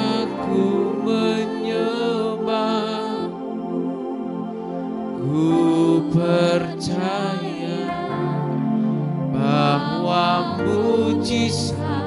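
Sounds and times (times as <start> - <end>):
person singing long notes: 0.0 - 4.5, 5.1 - 12.0
keyboard sustained chords: 0.0 - 12.0.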